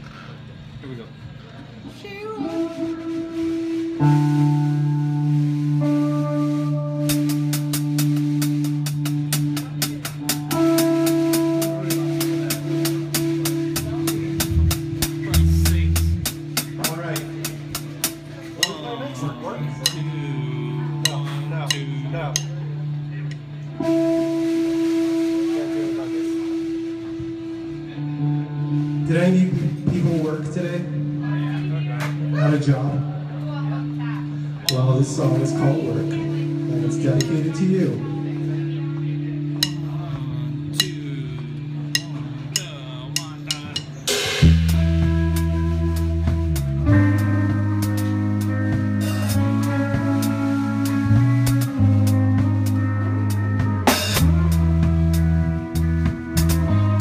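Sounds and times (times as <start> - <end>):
held low note: 2.0 - 57.0.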